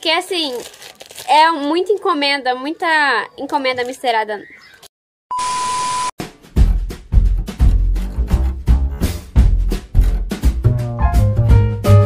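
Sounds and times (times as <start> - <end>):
steady high beep: 5.3 - 6.1
music with heavy bass beat: 6.2 - 12.0.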